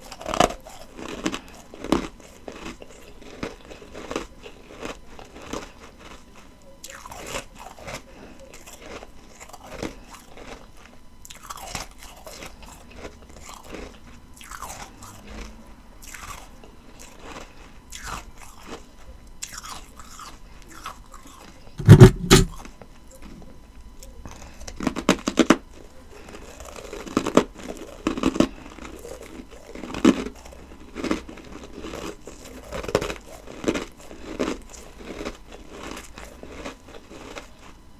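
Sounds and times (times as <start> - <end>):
chewing ice crunches: 0.0 - 37.8.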